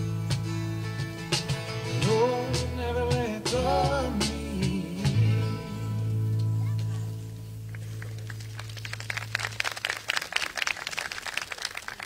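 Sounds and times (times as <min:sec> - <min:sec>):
crowd hand clapping: 0:07.6 - 0:12.0.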